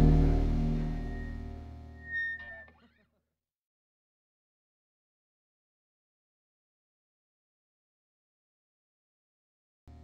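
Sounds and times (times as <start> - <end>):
rock song final chord: 0.0 - 1.9
high guitar note with gliding notes: 0.0 - 2.8.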